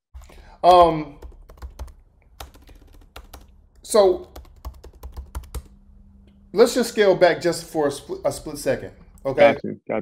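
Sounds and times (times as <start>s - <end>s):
keyboard typing: 0.2s - 6.4s.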